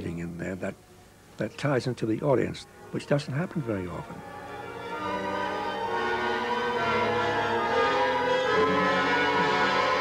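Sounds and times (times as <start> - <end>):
music of sustained chords: 0.0 - 10.0.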